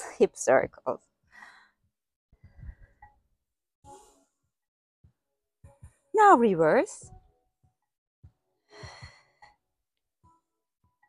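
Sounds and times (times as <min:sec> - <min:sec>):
woman breathing: 0:01.3 - 0:03.1, 0:08.6 - 0:09.6.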